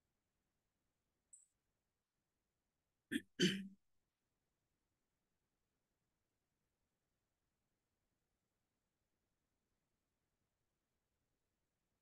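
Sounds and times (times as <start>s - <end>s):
person clearing throat: 3.1s - 3.8s.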